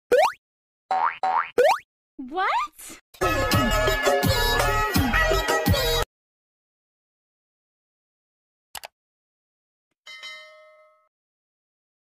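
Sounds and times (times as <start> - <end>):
cartoon boing effects: 0.1 - 1.8.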